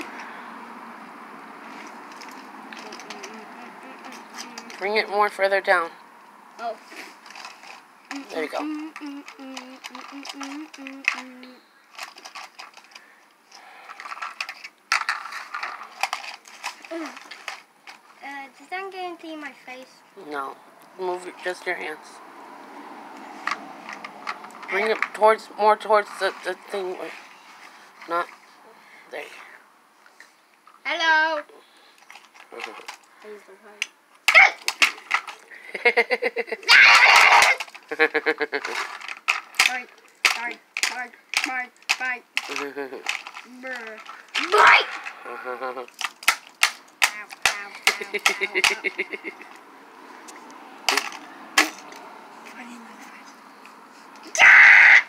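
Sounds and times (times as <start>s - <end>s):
rustling: 1.6s - 4.9s, 6.6s - 18.2s, 26.0s - 28.7s, 37.0s - 54.4s
plastic toys clattering on concrete: 1.7s - 5.0s, 7.2s - 18.2s, 23.4s - 25.4s, 32.0s - 45.2s, 45.8s - 49.6s, 50.8s - 52.7s
child giggling: 35.6s - 38.8s, 47.8s - 49.5s.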